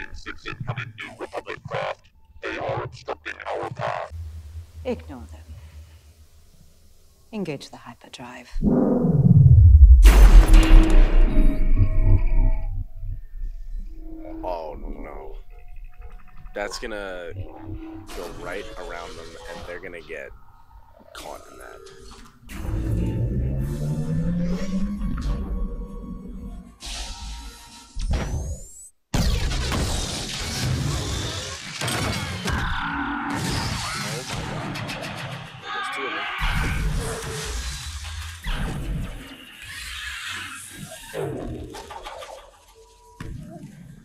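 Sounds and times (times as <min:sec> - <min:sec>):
faint hum: 0:00.0 - 0:21.8
low rumbling: 0:04.1 - 0:07.2, 0:08.5 - 0:16.6
rising sci-fi whine: 0:08.6 - 0:16.2
loud explosion with heavy rumble: 0:09.3 - 0:12.2.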